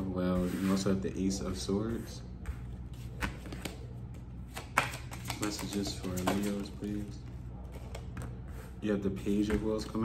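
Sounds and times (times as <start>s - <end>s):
low room hum: 0.0s - 10.0s
cards clicking and flicking: 4.5s - 7.0s.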